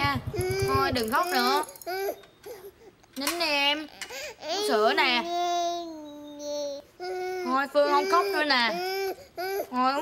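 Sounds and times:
baby crying: 0.3 - 2.9, 3.8 - 10.0.

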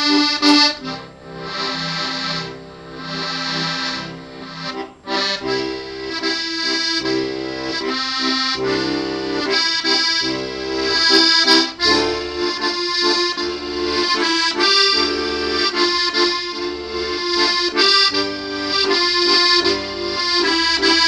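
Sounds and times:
button accordion melody: 0.0 - 21.0.

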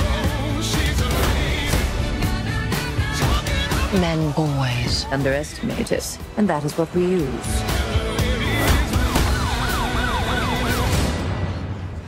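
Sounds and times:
police siren yelping: 8.9 - 11.2.

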